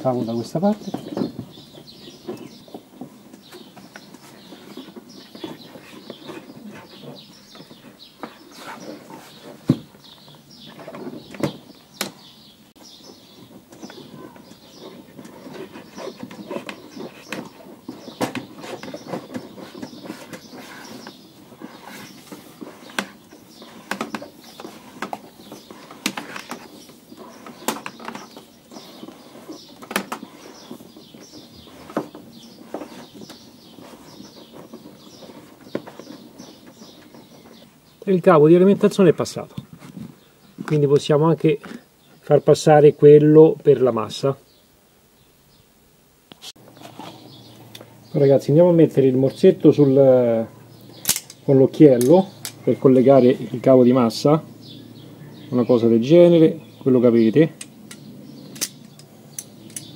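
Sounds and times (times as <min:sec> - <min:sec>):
cable rustling and scraping: 0:00.0 - 0:12.2, 0:13.0 - 0:37.9, 0:46.4 - 0:47.9.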